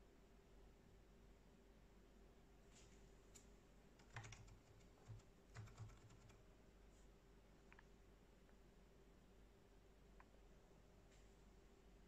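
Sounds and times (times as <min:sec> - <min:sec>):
computer fans humming: 0:03.2 - 0:12.0.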